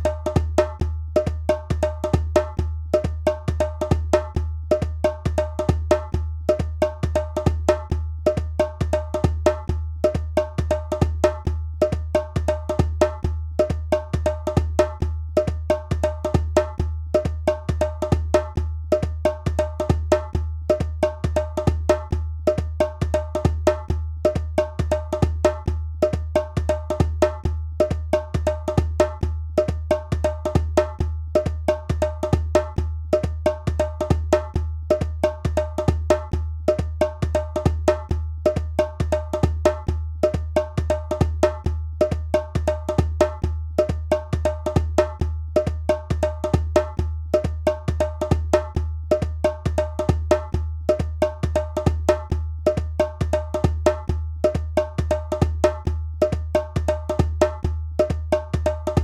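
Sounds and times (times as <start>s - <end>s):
fast hand drum pattern: 0.0s - 59.0s.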